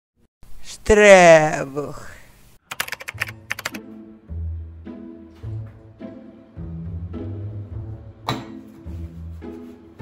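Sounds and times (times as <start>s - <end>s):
sharp typing-like clicks: 2.7s - 3.8s.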